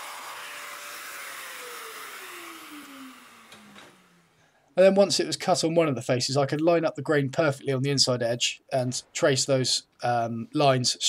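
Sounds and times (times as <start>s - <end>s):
power tool whine winding down: 0.0s - 4.4s.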